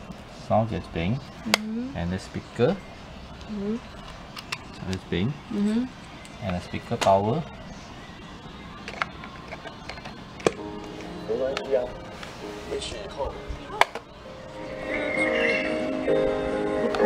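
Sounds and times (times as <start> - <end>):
music from small speaker: 8.8 - 17.0.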